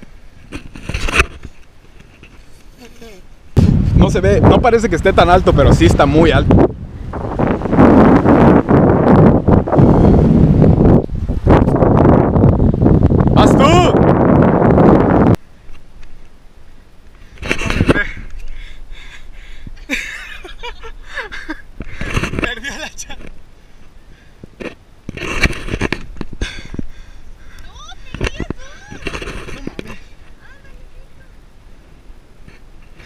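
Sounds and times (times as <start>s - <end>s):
wind buffeting microphone: 3.5s - 16.1s, 16.9s - 33.0s.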